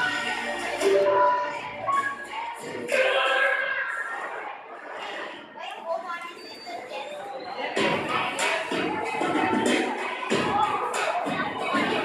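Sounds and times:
girl singing: 0:08.1 - 0:12.0.

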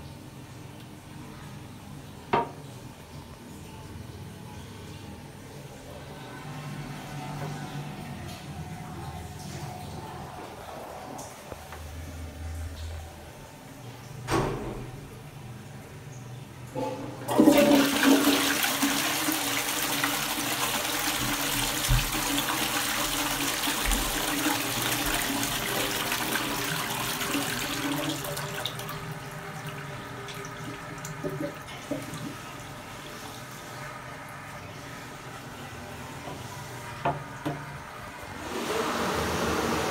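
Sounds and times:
water running steadily: 0:00.0 - 0:39.9
toilet flush water rushing: 0:16.8 - 0:36.2, 0:37.0 - 0:39.9.

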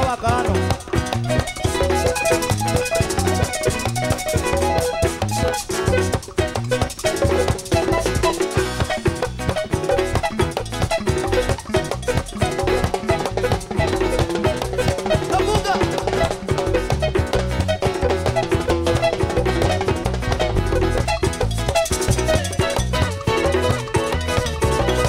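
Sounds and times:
cowbell: 0:00.0 - 0:25.0
electric bass: 0:00.0 - 0:25.0
hand drum: 0:00.0 - 0:25.0
strummed acoustic guitars: 0:00.0 - 0:25.0.

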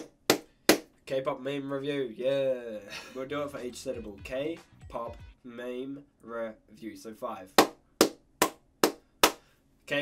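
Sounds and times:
hand claps: 0:00.0 - 0:00.9, 0:07.6 - 0:09.5.

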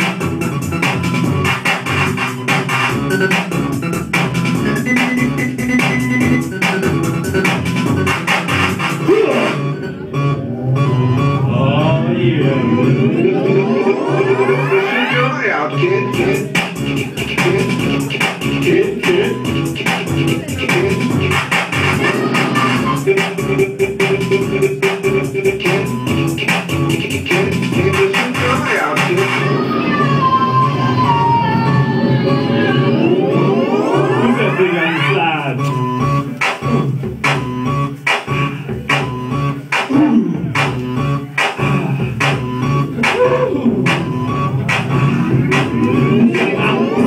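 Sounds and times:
electronic music: 0:00.0 - 0:47.0
pulsing bass: 0:00.0 - 0:47.0
rising synthesizer sweep: 0:00.4 - 0:15.4, 0:28.6 - 0:35.4.

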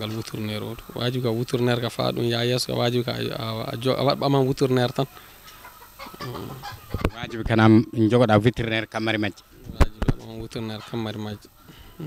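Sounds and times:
chickens clucking: 0:04.7 - 0:07.9.

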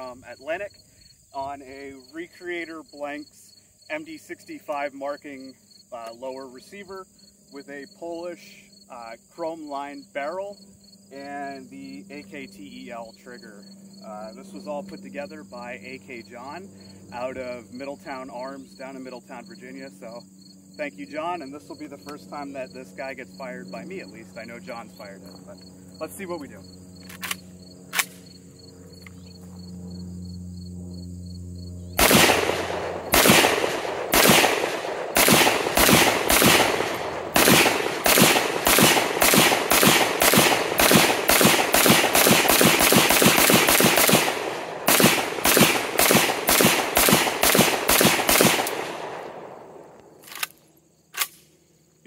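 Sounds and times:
rifle gunshots: 0:32.0 - 0:49.9.

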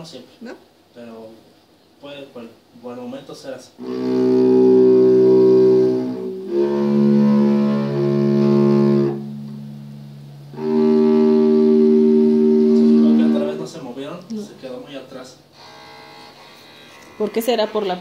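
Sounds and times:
cello bowed notes: 0:03.8 - 0:17.8.

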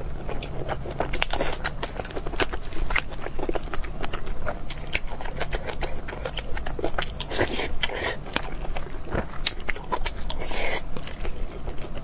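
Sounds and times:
person chewing food: 0:00.0 - 0:12.0.

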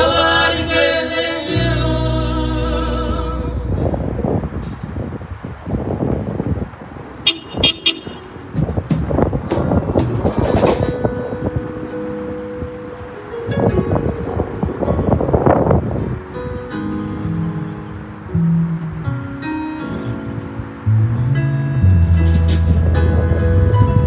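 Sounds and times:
gusts of noise: 0:01.7 - 0:11.9, 0:12.6 - 0:18.3
car horns honking: 0:07.2 - 0:08.6.

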